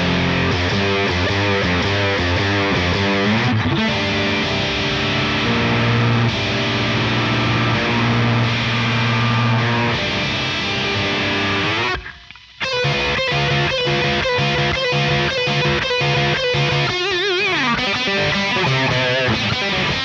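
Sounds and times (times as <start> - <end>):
distorted electric guitar: 0.0 - 20.0.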